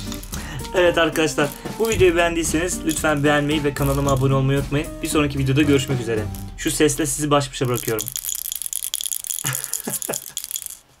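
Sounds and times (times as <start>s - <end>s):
plastic toy bottle rattling: 0.0s - 4.5s, 5.7s - 11.0s.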